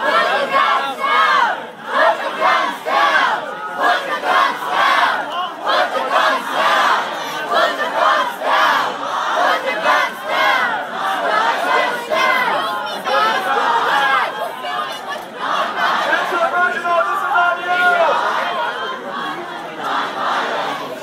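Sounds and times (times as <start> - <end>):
crowd shouting: 0.0 - 21.0.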